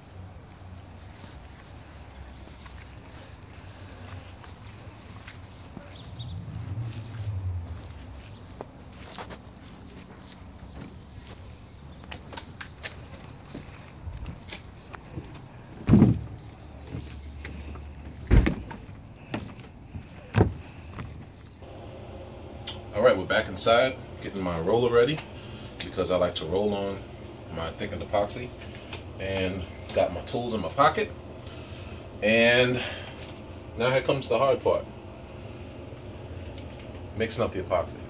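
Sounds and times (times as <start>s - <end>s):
low rumble: 5.6s - 8.9s.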